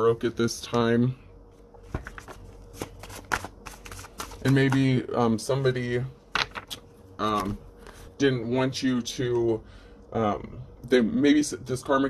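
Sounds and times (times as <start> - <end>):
cards being shuffled: 1.8 - 5.0.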